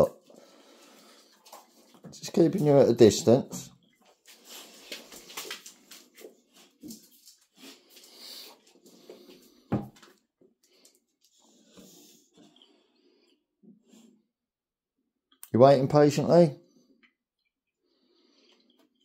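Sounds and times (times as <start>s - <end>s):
dogs breathing and sniffing: 0.2s - 9.7s, 10.6s - 14.2s.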